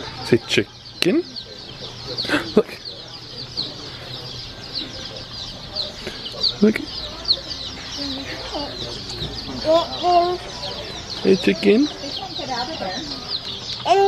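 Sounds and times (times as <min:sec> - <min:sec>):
baby chicks peeping: 0:00.0 - 0:14.0.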